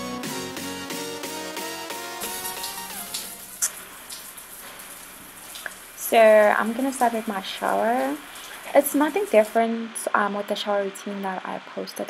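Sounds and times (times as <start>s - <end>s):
shower water hissing: 2.0s - 9.6s
water splashes: 2.2s - 9.6s.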